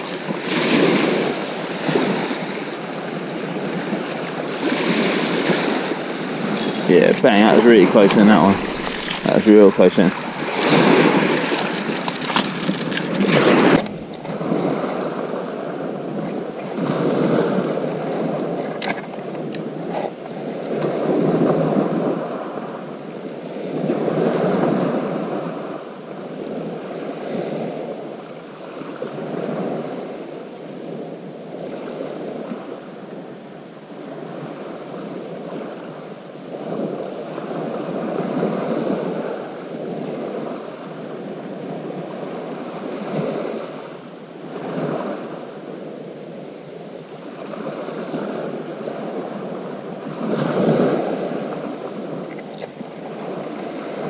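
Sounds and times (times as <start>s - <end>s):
waves washing over shingle: 0.0s - 22.8s.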